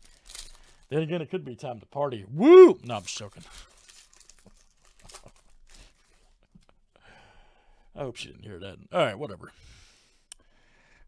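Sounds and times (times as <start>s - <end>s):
foil wrapper crackling and rustling: 0.0s - 0.9s, 2.8s - 6.4s.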